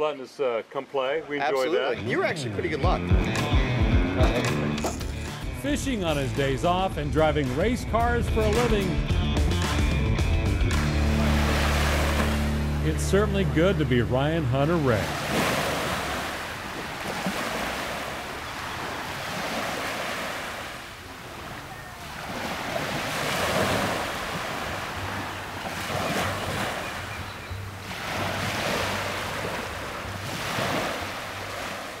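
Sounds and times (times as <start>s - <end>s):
ocean surf washing: 10.7s - 32.0s.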